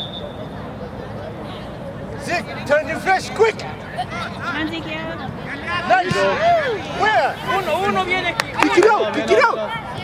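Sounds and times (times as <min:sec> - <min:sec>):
distant voices and chatter: 0:00.0 - 0:10.0.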